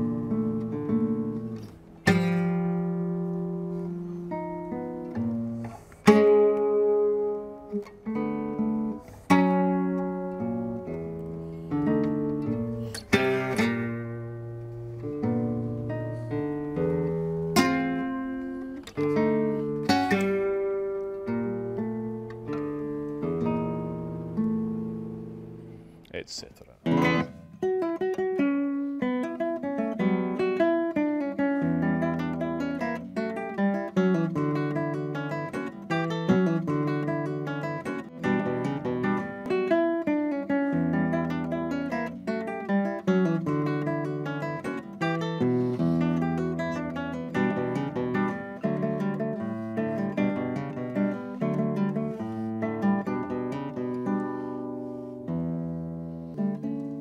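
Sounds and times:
acoustic guitar music: 0.0s - 57.0s.

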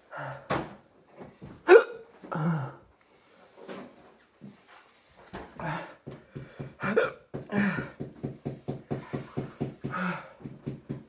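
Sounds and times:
man gasping: 2.2s - 3.2s, 5.4s - 8.3s, 9.0s - 10.6s
man breathing rapidly: 2.3s - 11.0s.

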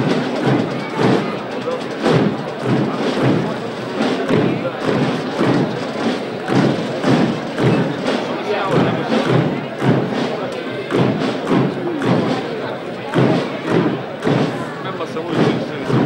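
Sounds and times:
crowd murmuring: 0.0s - 16.0s
slow drum thuds: 0.0s - 16.0s.

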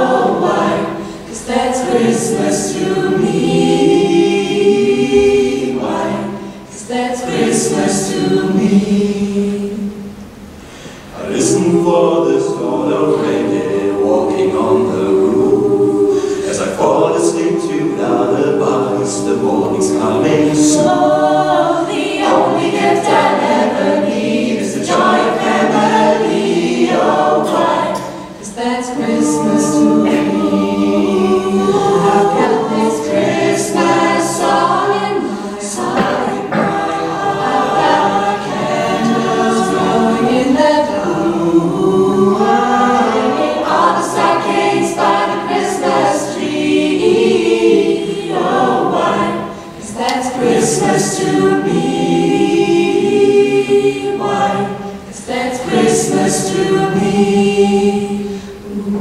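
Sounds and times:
ensemble singing in close harmony: 0.0s - 59.0s.

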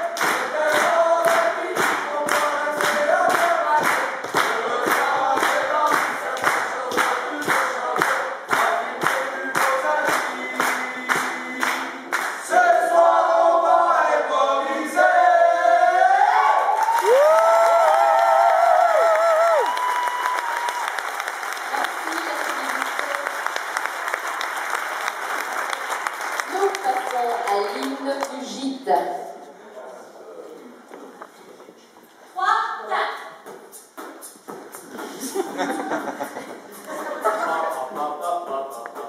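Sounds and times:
group singing a cappella: 0.0s - 16.7s, 36.8s - 39.0s
audience applause: 16.6s - 28.1s
brisk steady beat: 33.5s - 39.0s.

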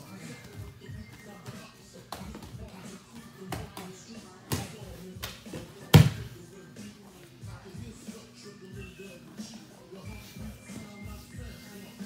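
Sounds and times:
gloved strikes on mat: 4.5s - 6.3s.

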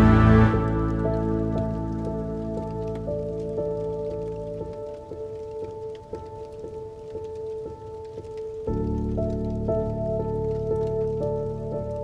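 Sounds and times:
melancholic piano music: 0.0s - 12.0s
rain pattering: 0.0s - 12.0s.

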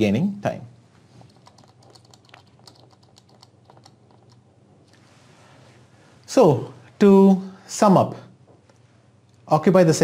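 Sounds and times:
computer keys clicking: 1.2s - 4.5s.

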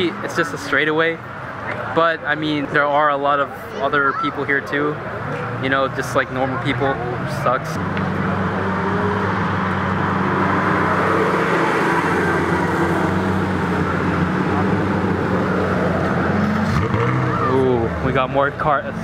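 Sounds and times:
car engine driving off: 7.0s - 19.0s.

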